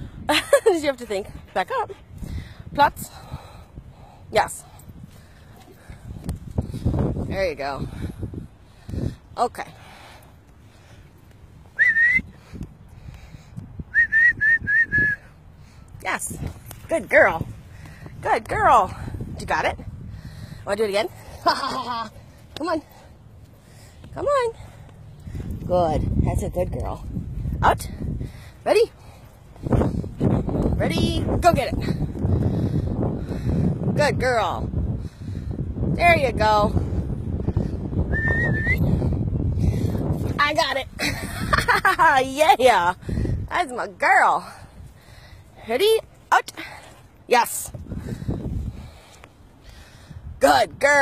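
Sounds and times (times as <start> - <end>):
wind rumble on microphone: 0.0 - 51.0
person whistling: 11.8 - 12.4, 13.9 - 15.3, 38.1 - 38.9.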